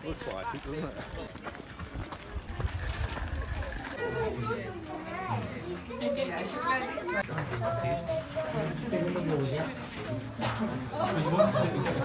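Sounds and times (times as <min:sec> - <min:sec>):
people talking indistinctly: 0:02.3 - 0:12.0.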